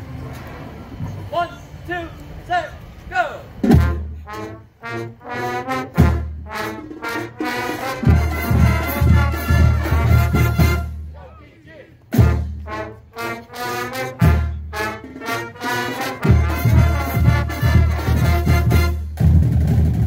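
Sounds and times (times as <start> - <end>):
marching band brass: 0.0 - 20.0.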